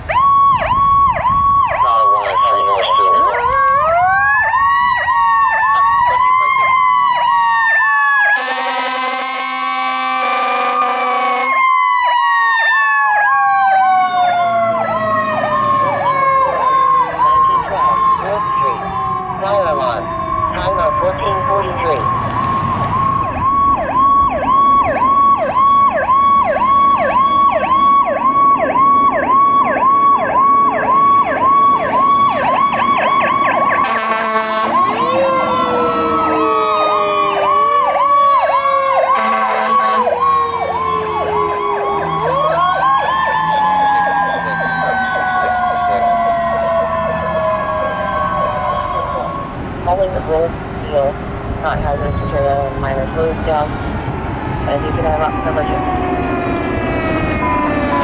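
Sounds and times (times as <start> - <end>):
electronic siren yelping: 0.0 - 50.2, 50.8 - 58.0
air horn blast: 8.3 - 11.6, 33.8 - 35.5, 39.1 - 40.2.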